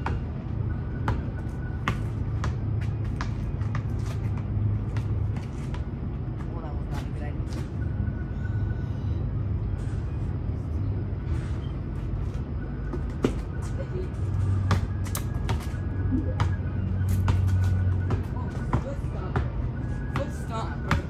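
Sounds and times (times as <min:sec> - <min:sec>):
basketball bouncing on pavement: 0:00.0 - 0:07.8, 0:12.9 - 0:13.6, 0:14.5 - 0:21.0.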